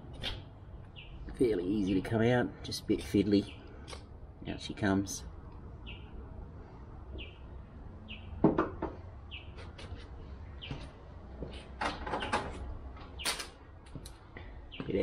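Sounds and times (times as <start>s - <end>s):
bird chirping: 0.8s - 2.0s, 5.8s - 6.2s, 7.2s - 10.9s.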